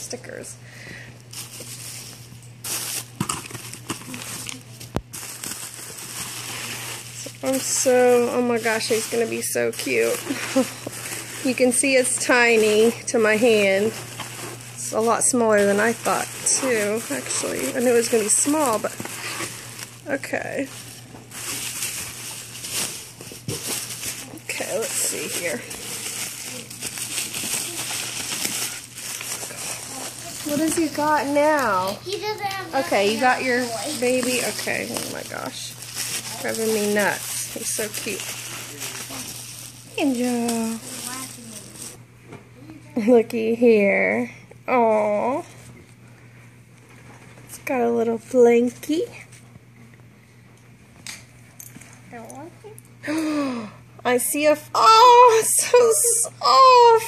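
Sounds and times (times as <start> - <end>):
packaging rustling and crinkling: 0.9 - 42.0
bubble wrap handled: 1.2 - 42.0.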